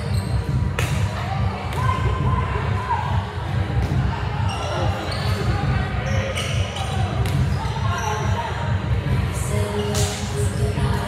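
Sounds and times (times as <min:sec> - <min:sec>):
scattered voices: 0:00.0 - 0:11.0.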